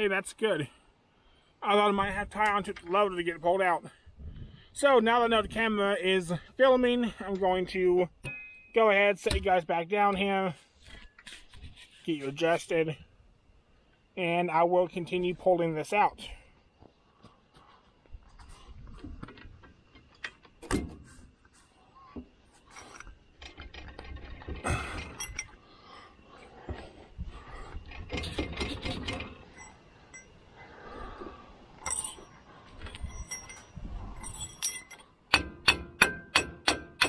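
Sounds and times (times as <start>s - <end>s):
sharp ringing metallic taps: 8.2s - 9.4s, 33.0s - 37.0s
metal knocks clunks and scrapes: 18.2s - 30.4s.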